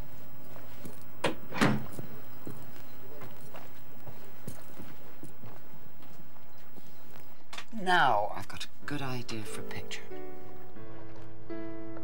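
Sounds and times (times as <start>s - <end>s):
scuffs: 0.0s - 1.2s, 1.8s - 7.5s
footsteps on cabin floor: 0.0s - 7.6s.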